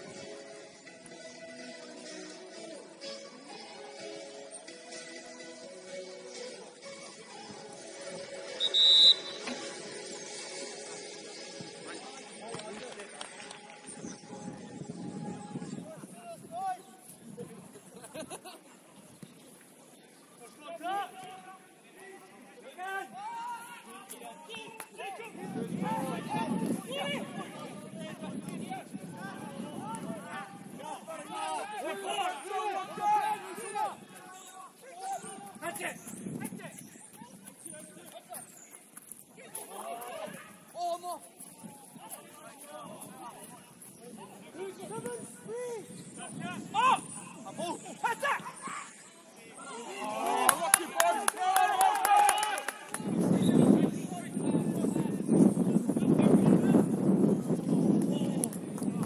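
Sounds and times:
referee whistle blast: 8.6 - 9.6.

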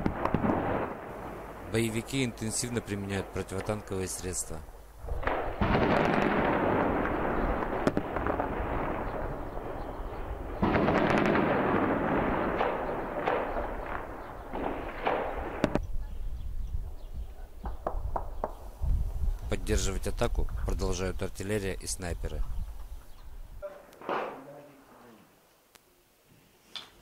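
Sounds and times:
rifle shots: 0.0 - 2.3, 5.2 - 15.8, 23.9 - 24.6
heavy explosions with rumbling echo: 0.0 - 17.0
single gunshots: 5.2 - 9.8, 10.6 - 15.8, 23.8 - 24.6.

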